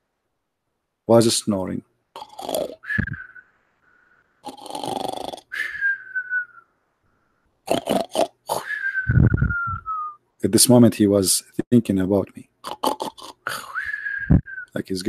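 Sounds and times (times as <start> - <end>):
mock snoring: 2.2 - 3.2, 4.4 - 5.6, 7.7 - 8.7, 12.6 - 13.5.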